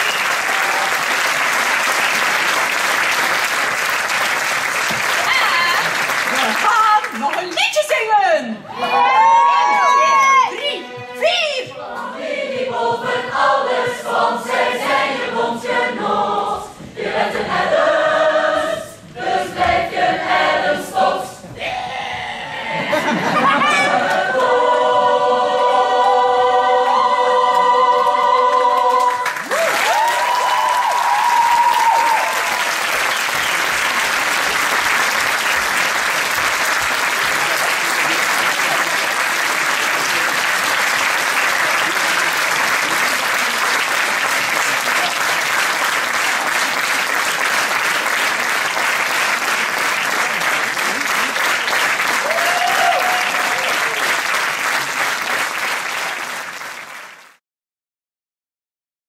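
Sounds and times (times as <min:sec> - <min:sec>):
people cheering: 0:00.0 - 0:07.2, 0:08.6 - 0:11.7, 0:28.8 - 0:56.4
audience applause: 0:00.0 - 0:07.6, 0:28.8 - 0:57.4
choir holding a chord: 0:11.8 - 0:21.4, 0:23.8 - 0:29.3.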